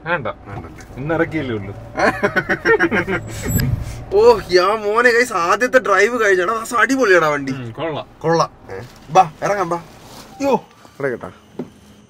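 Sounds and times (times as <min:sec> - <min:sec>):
diesel engine humming: 0:00.0 - 0:11.1.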